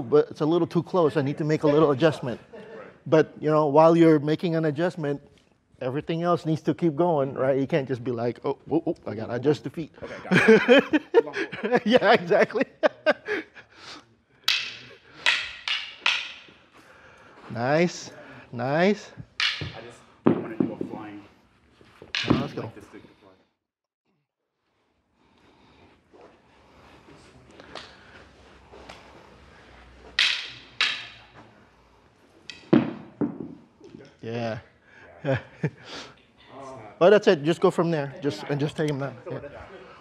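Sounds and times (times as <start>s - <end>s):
practice stick clacks and cracks: 14.4s - 16.6s, 19.2s - 20.8s, 22.0s - 22.6s, 30.1s - 31.4s, 32.5s - 33.0s.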